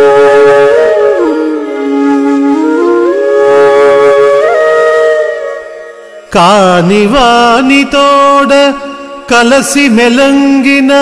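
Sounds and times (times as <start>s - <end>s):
flute-like note: 0.0s - 6.3s.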